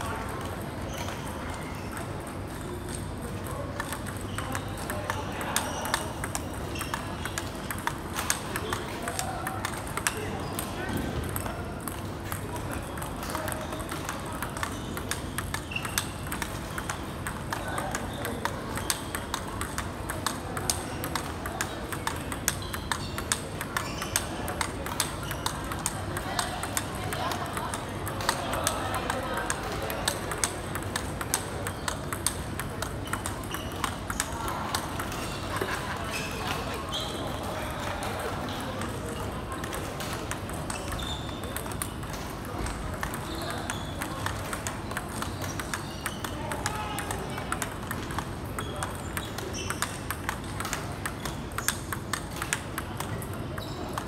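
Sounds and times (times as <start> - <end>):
ping pong ball clicking: 0.2 - 54.0.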